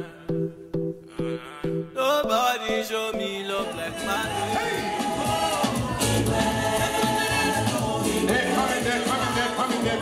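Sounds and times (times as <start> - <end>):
choir singing long notes: 4.1 - 10.0.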